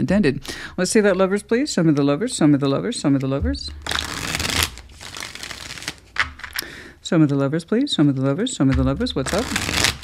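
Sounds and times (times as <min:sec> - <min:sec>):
cards being shuffled: 0:03.8 - 0:06.6, 0:08.0 - 0:10.0
cards snapping together: 0:03.8 - 0:06.7, 0:08.7 - 0:10.0.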